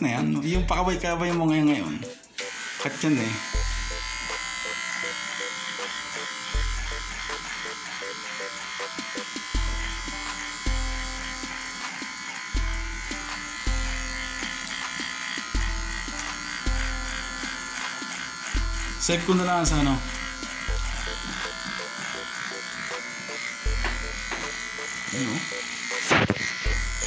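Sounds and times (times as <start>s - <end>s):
music with deep bass beat: 0.5s - 1.7s, 26.1s - 27.0s
electric hair clipper buzzing: 2.2s - 27.0s.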